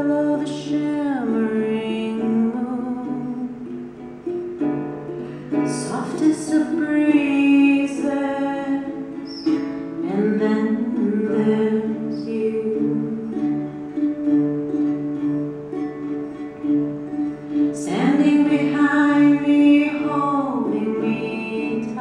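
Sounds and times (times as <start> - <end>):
small string instrument strummed: 0.0 - 22.0.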